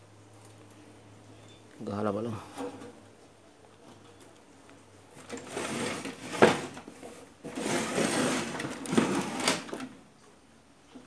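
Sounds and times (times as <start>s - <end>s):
rubbing and scraping on metal cabinet: 5.2s - 9.8s.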